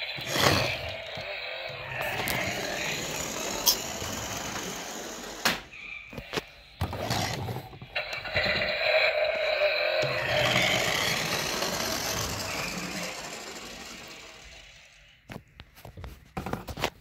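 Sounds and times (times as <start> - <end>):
toy car electronic engine sound: 0.0 - 5.5, 6.7 - 15.2.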